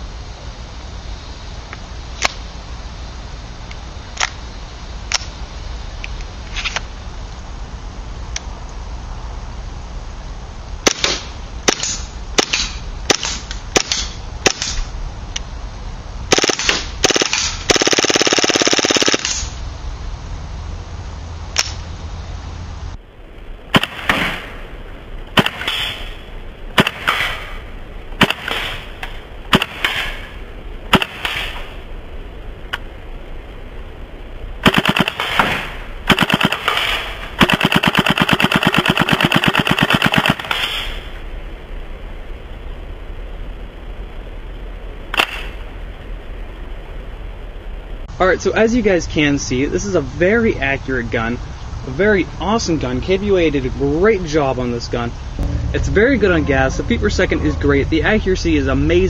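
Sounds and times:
airsoft gun single shots: 10.8 - 14.8, 23.7 - 24.6, 25.4 - 26.2, 26.8 - 27.6, 28.2 - 31.8, 34.6 - 41.2, 45.1 - 45.6
airsoft gun full-auto burst: 16.3 - 19.5, 25.4 - 26.2, 26.8 - 27.6, 28.2 - 31.8, 34.6 - 41.2.

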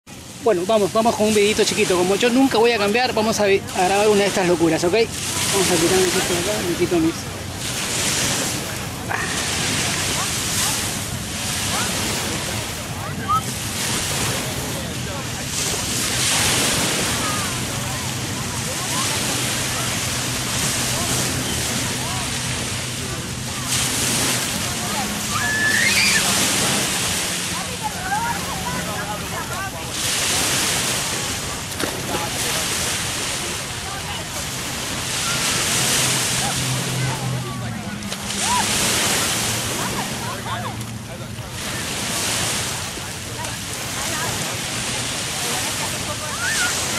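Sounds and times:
surf breaking on a beach: 0.0 - 46.9
faint distant voices: 0.1 - 46.9.

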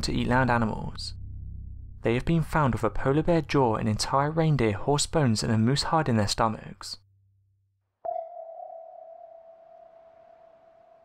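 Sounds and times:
ping-like ringing tone: 8.1 - 11.0.

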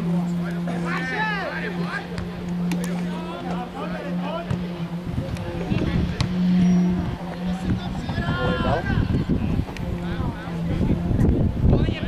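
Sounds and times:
steady low hum: 0.0 - 12.0
distant players shouting: 0.3 - 9.3.

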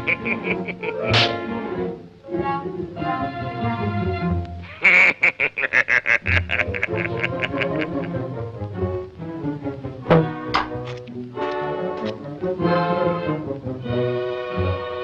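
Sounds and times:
cartoon character vocalising: 0.0 - 1.2, 4.7 - 8.1
short staccato notes: 0.0 - 1.4
orchestral cartoon music: 0.0 - 5.1, 6.3 - 15.0.

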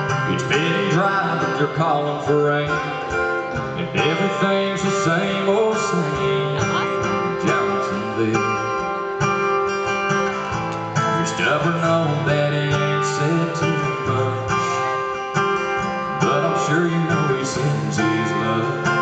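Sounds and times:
man singing into a microphone: 0.0 - 9.1, 10.9 - 15.0, 15.9 - 19.0
acoustic guitar strumming: 0.0 - 19.0.

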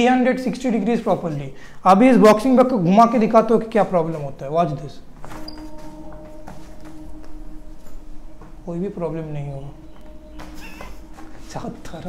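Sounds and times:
steady hum: 4.7 - 12.0.

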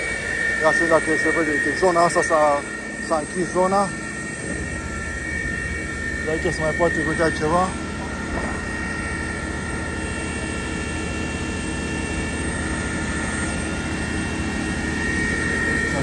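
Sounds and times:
fire engines and pumps droning: 0.0 - 16.0
high-pitched whine: 0.0 - 16.0.

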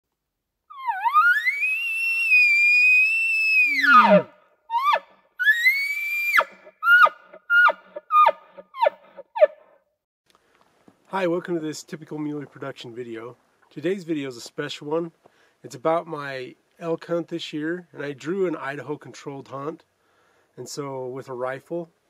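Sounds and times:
elk bugling: 0.7 - 9.5.

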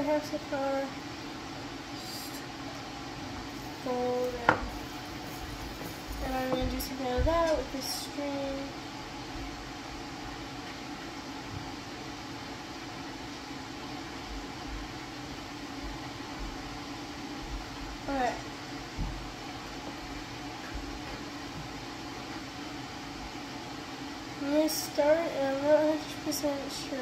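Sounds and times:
low hum of room noise: 0.0 - 27.0.

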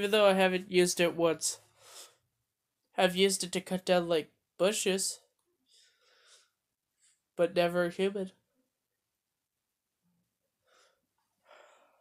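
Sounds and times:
faint breaths: 1.6 - 2.3, 5.5 - 7.4, 10.6 - 12.0.

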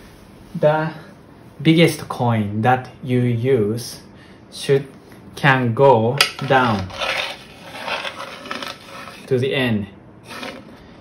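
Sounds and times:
hands scraping on wooden board: 6.2 - 9.3, 10.3 - 10.7.

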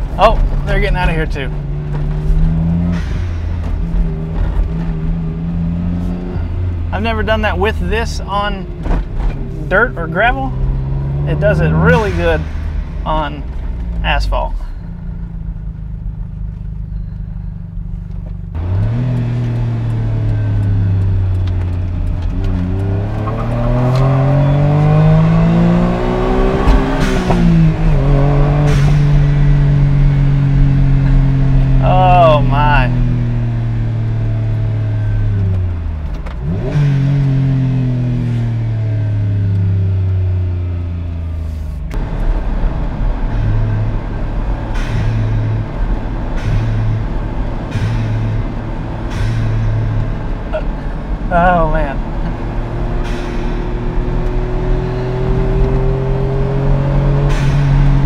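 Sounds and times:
small car engine accelerating: 8.6 - 12.9, 14.8 - 58.0.

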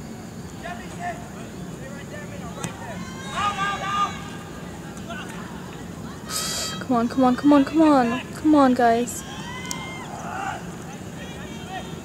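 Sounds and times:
voices shouting: 0.6 - 12.0.

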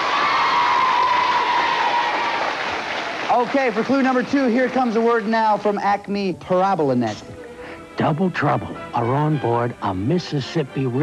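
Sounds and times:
children applauding: 0.0 - 5.6.

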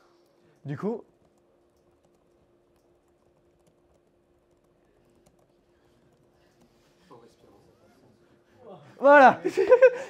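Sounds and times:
faint steady hum: 0.0 - 10.0
typing on keyboard: 1.1 - 6.3.

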